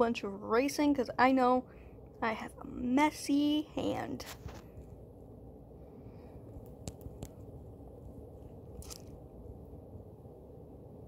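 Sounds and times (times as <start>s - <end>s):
short crunchy noise: 8.7s - 9.2s.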